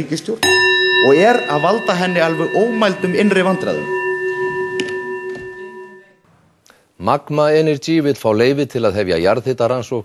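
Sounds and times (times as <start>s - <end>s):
desk bell ringing: 0.4s - 6.2s.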